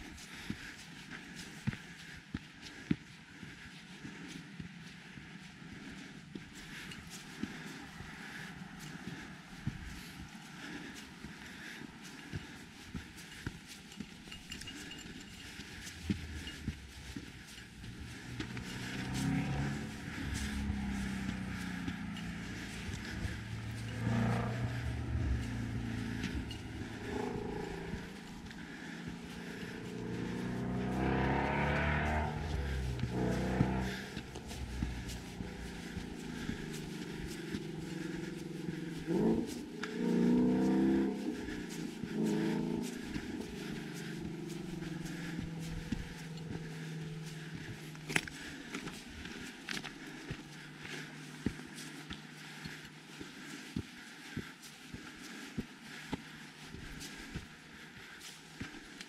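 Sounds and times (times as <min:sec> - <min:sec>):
footsteps on dirt trail: 0:00.0 - 0:59.0
passing vehicle engines: 0:00.0 - 0:59.0.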